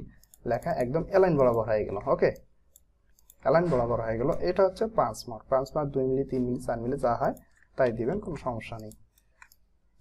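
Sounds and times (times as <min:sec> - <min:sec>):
man speaking: 0:00.0 - 0:02.5, 0:03.4 - 0:09.1.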